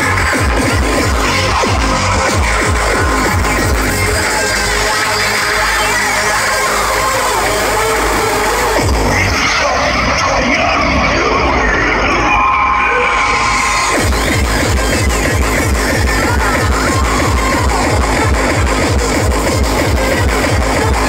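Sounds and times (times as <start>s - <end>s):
hardcore electronic music: 0.0s - 21.0s
fast kick drums: 14.0s - 21.0s.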